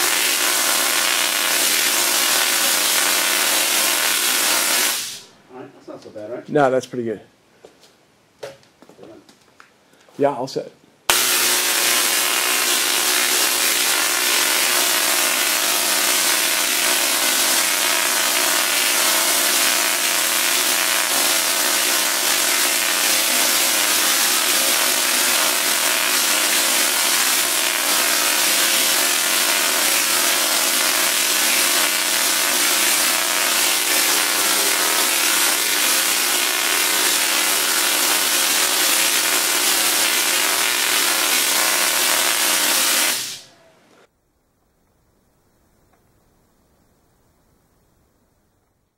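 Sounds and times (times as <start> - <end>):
tesla coil spark buzz: 0.0 - 5.4, 11.1 - 43.6.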